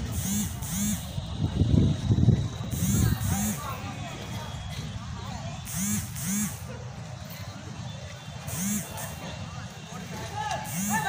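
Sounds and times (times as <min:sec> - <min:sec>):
wind rumble on microphone: 0:01.1 - 0:03.4.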